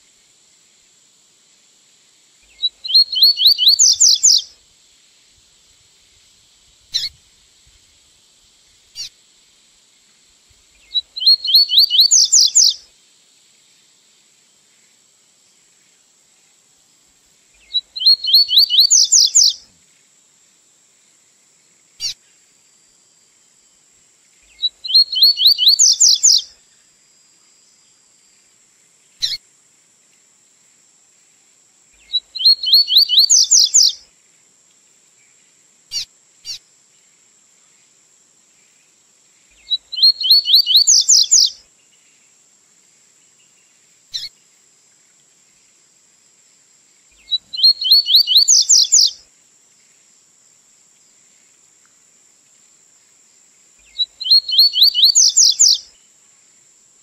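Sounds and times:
bird song of rising notes: 2.5 - 4.4, 10.9 - 12.8, 17.7 - 19.6, 24.6 - 26.4, 32.1 - 34.0, 39.6 - 41.5, 47.2 - 49.1, 53.9 - 55.8
short bird chirps: 2.5 - 4.5, 6.9 - 7.2, 10.8 - 12.8, 17.6 - 19.6, 24.5 - 26.5, 29.2 - 29.4, 32.0 - 34.0, 35.9 - 36.6, 39.6 - 41.6, 44.1 - 44.3, 47.2 - 49.2, 53.8 - 55.9.

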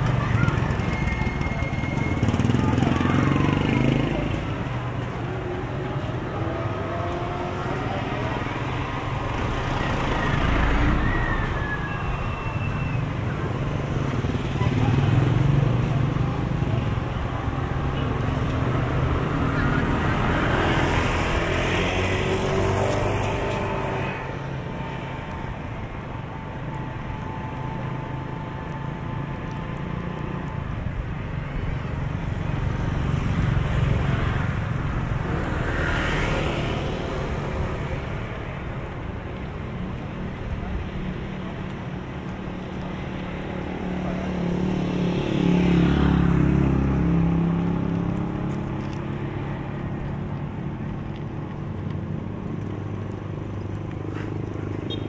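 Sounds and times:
motorcycles passing: 0.0 - 55.0
traffic hum of engines and tyres: 0.0 - 55.0.

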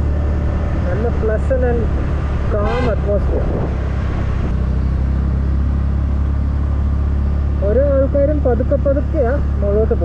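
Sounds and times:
wind on microphone: 1.6 - 4.6.

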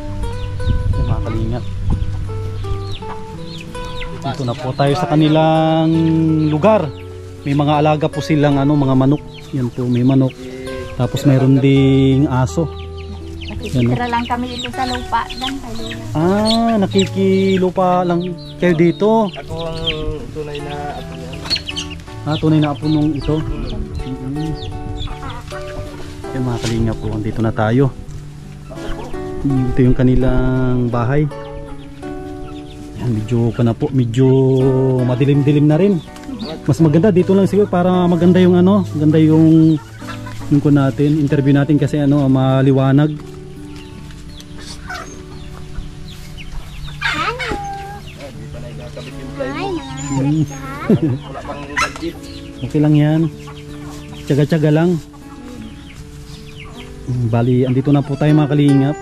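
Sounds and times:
background music of held notes: 0.0 - 59.0
chickens clucking: 0.0 - 59.0.

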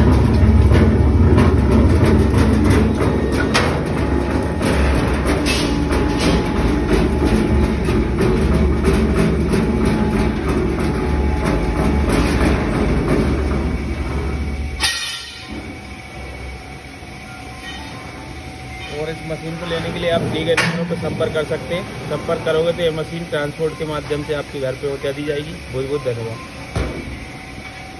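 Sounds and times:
mixer motor rumbling and rattling: 0.0 - 27.9
quiet workshop noise: 0.0 - 27.9.

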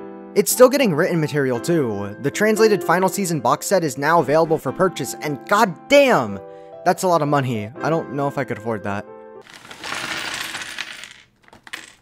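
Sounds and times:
small objects clattering on desk: 9.4 - 12.0.

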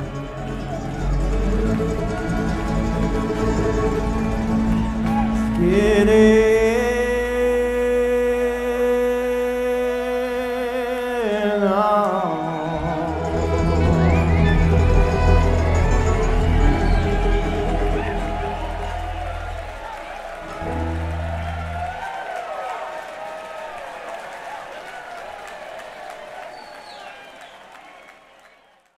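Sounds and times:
whistles: 0.0 - 5.8, 11.6 - 22.8, 26.1 - 29.0
string band playing: 0.0 - 6.8, 12.7 - 22.0
audience cheering and applauding: 0.0 - 7.1, 11.2 - 29.0
low bass notes: 12.8 - 22.0.

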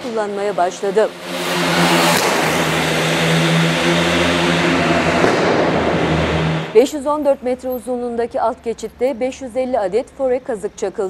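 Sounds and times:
car driving through underpass: 0.0 - 7.5.

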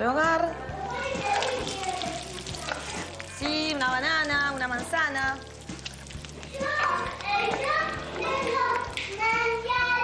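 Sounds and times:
young child talking: 0.8 - 3.0.

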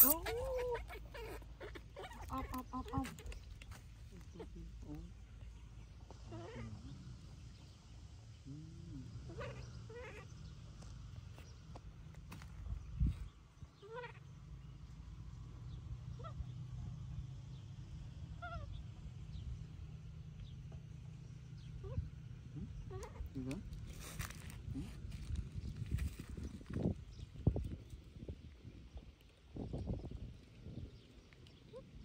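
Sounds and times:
baby monkey crying: 0.0 - 3.3.

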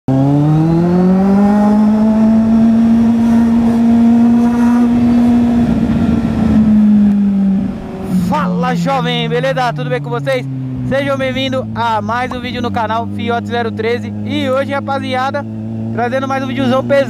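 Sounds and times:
motorcycle engine revving: 0.1 - 17.0
wind rush: 1.7 - 9.3.

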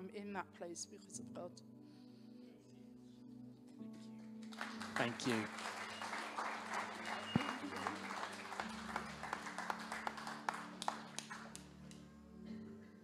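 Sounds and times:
congregation applauding: 4.4 - 11.9.

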